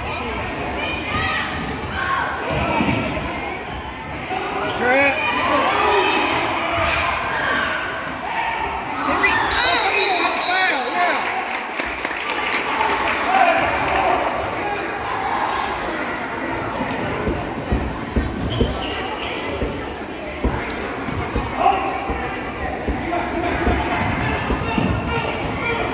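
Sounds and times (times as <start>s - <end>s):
spectator chatter: 0.0s - 25.9s
basketball bounces: 17.1s - 25.3s
sneaker squeaks on court: 18.2s - 21.6s.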